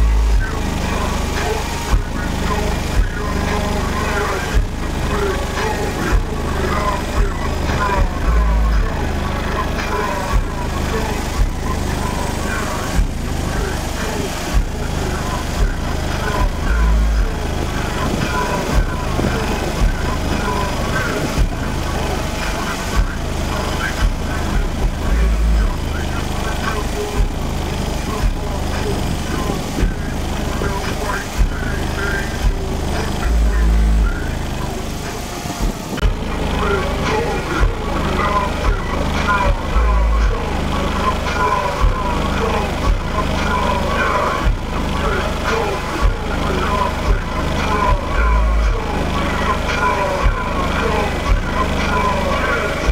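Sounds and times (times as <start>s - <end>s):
bass-heavy music with vocals: 0.0s - 52.9s
deep bass note: 0.0s - 52.9s.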